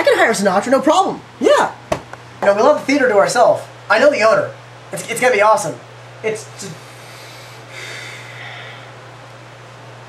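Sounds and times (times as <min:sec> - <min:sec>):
steady low hum: 0:00.0 - 0:10.0
man snort-like exhale: 0:06.8 - 0:08.9.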